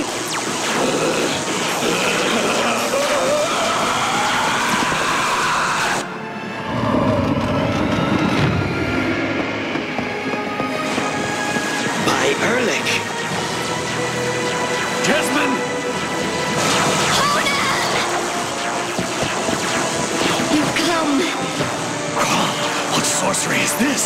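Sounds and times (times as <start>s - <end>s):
rising sweep: 5.9s - 20.6s
magic sound effects: 6.2s - 24.0s.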